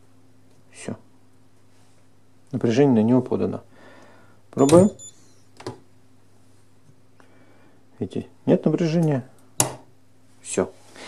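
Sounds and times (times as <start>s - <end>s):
faint steady hum: 0.0s - 11.0s
access controller click: 4.6s - 5.3s.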